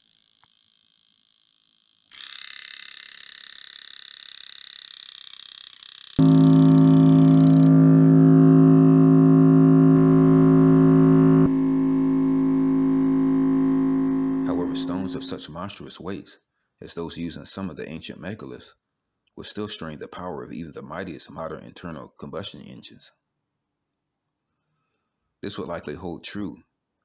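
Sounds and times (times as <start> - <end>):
high-pitched steady tone: 6.2 - 15.4
low drone with overtones: 6.2 - 15.4.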